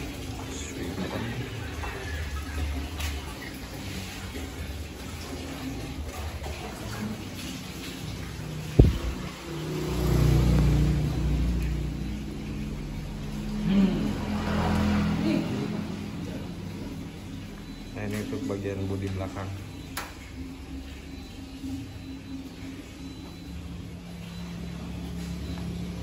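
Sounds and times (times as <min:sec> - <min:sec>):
workshop background noise: 0:00.0 - 0:26.0
vehicle engine running: 0:08.3 - 0:18.0, 0:18.6 - 0:26.0.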